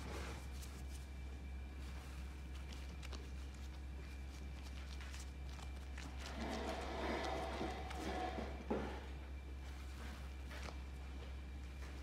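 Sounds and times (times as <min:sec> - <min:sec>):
hands rubbing dough: 0:00.0 - 0:08.4
steady low hum: 0:00.0 - 0:12.0.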